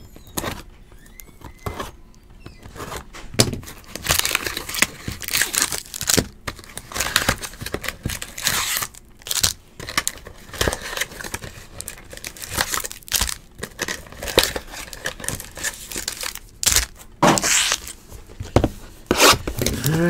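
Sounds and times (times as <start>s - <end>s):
foil packs crinkling: 3.6s - 20.0s.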